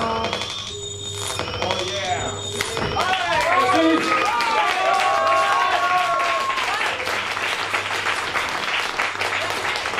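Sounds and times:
steady electronic tones: 0:00.0 - 0:04.0.

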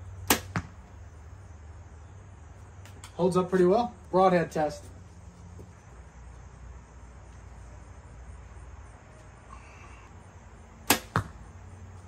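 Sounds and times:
faint insects: 0:00.0 - 0:12.0
low steady hum: 0:00.0 - 0:12.0
loud sharp snap: 0:00.3 - 0:00.7, 0:10.8 - 0:11.3.

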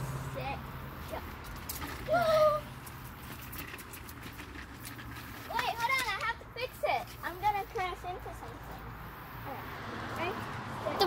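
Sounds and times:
children vocalizing and chattering: 0:00.0 - 0:11.0
child's high exclamation: 0:02.1 - 0:02.7.

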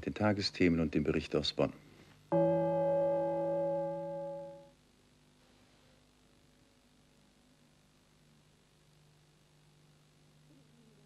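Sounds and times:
electronic sustained chord: 0:02.3 - 0:04.8.

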